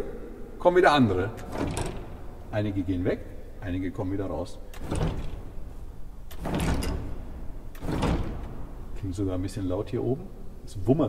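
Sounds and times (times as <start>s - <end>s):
organ stop knobs clattering: 1.3s - 3.1s, 3.9s - 9.0s.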